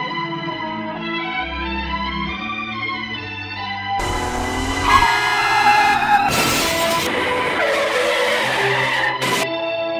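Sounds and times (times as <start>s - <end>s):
car tyre screech: 4.0s - 9.5s.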